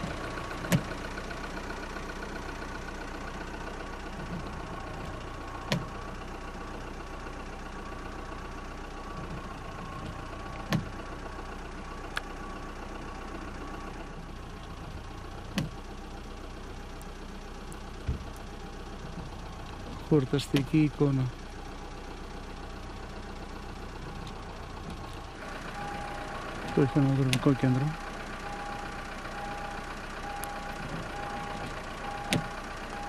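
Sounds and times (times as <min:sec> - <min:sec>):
car engine humming: 0:00.0 - 0:33.0.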